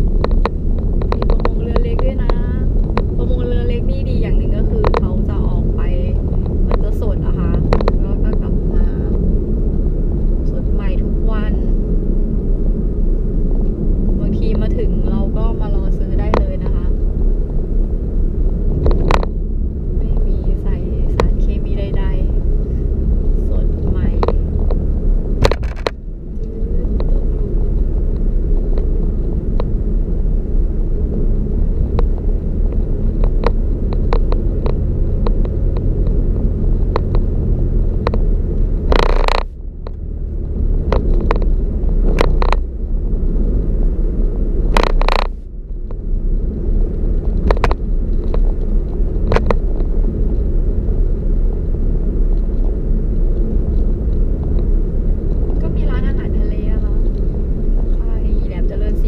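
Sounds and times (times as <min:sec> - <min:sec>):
engine and tyres rumbling: 0:00.0 - 0:59.0.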